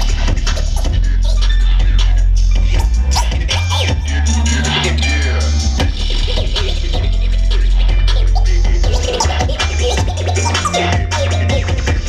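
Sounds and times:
record scratching: 0:00.0 - 0:05.0, 0:05.8 - 0:11.9
beat with heavy bass line: 0:00.0 - 0:12.0.

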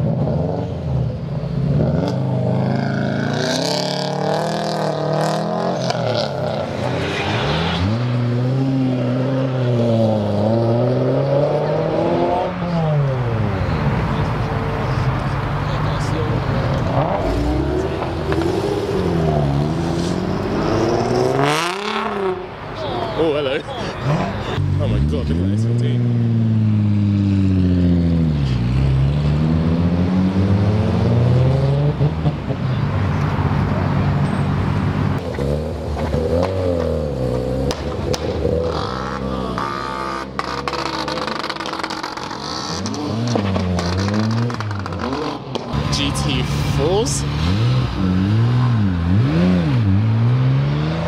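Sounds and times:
performance car engines revving: 0:00.0 - 0:51.0.

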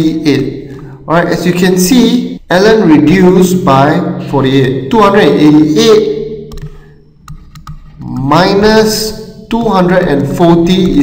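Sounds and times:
man speaking: 0:00.0 - 0:06.5, 0:08.0 - 0:11.0
pen tapping on tablet: 0:09.6 - 0:11.0.

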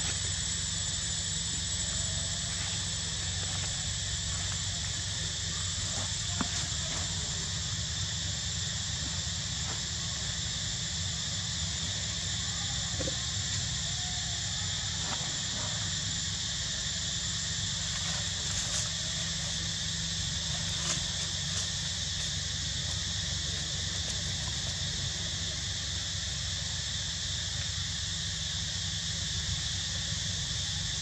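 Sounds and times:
low even hum: 0:00.0 - 0:30.9
high-pitched insect drone: 0:00.0 - 0:31.0.

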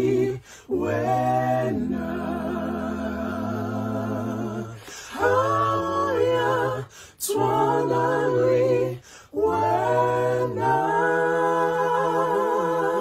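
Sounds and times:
voices singing in harmony: 0:00.0 - 0:13.0.

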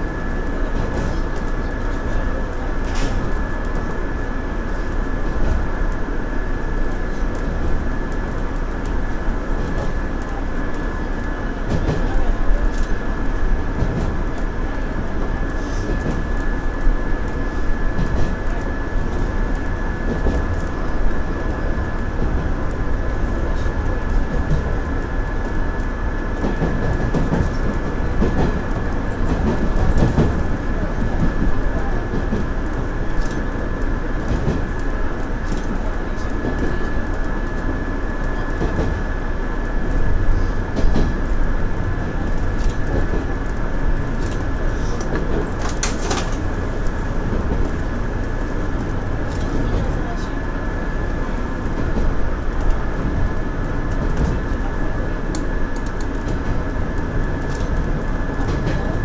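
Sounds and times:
train wheels and motors rumbling: 0:00.0 - 0:59.0
wheels clicking over rail joints: 0:40.7 - 0:50.4.

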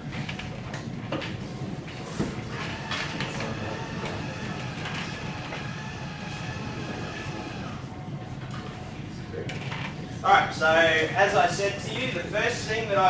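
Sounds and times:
projector screen motor whine: 0:01.3 - 0:09.2.

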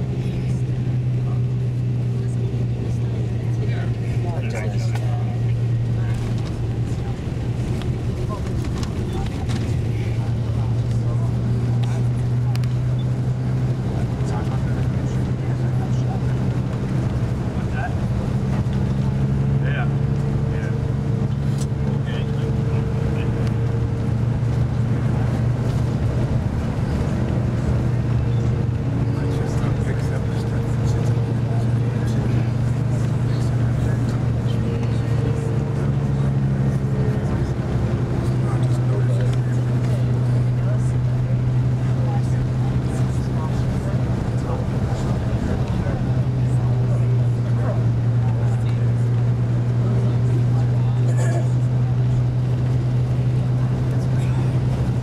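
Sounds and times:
low motor hum: 0:00.0 - 0:55.0.

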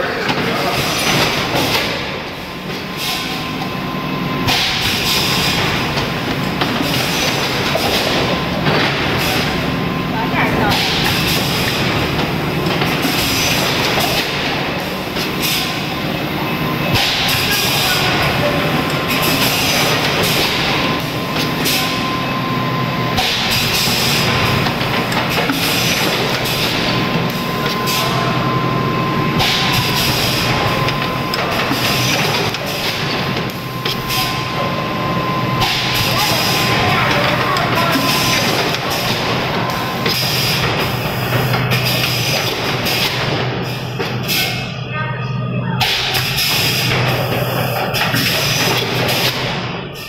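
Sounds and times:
machine mechanical din: 0:00.0 - 0:44.7.

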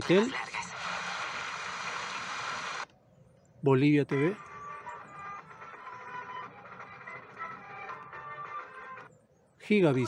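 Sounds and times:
folk music through tv speaker: 0:04.1 - 0:09.1.

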